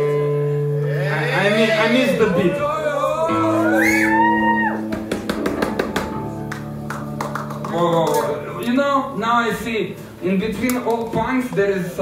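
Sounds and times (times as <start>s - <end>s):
man talking: 1.0s - 3.3s, 7.7s - 12.0s.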